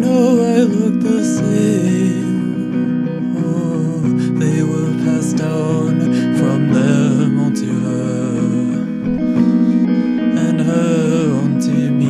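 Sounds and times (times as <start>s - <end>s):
acoustic guitar: 0.0s - 12.0s
person singing: 0.0s - 12.0s.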